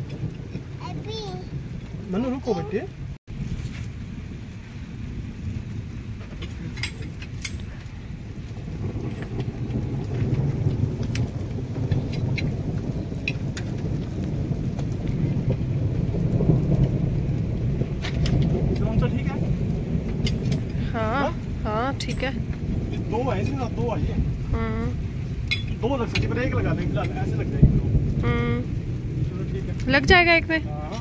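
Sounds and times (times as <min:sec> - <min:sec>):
wind buffeting microphone: 0:00.0 - 0:31.0
person calling out: 0:24.6 - 0:25.0, 0:28.2 - 0:28.7.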